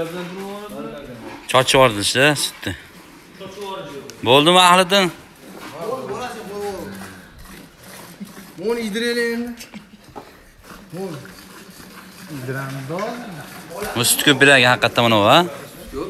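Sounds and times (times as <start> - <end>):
men talking: 0.0 - 9.8, 10.7 - 16.0
milk squirting into metal pail: 0.0 - 15.7.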